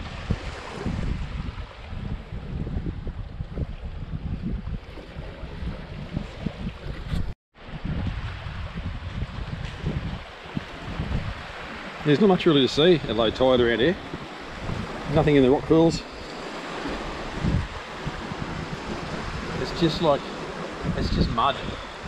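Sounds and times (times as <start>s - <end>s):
small waves at shoreline: 0.0s - 22.0s
wind buffeting microphone: 0.0s - 22.0s.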